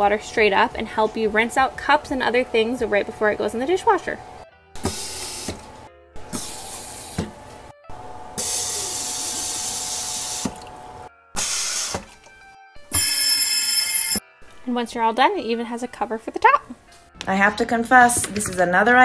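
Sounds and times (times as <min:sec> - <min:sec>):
water spray hissing: 0:04.8 - 0:05.7, 0:08.4 - 0:10.7, 0:11.4 - 0:12.2, 0:12.9 - 0:14.2
water running into sink: 0:08.4 - 0:10.8.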